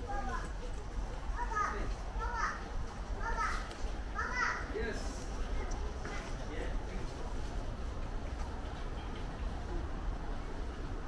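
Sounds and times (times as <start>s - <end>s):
child calling out: 3.2s - 4.7s.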